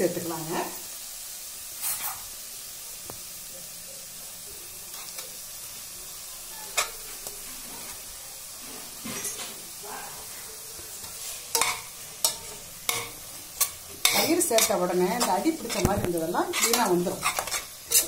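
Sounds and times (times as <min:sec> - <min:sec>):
food sizzling in a pot: 0:00.0 - 0:18.0
spatula scraping and knocking pot: 0:11.0 - 0:18.0.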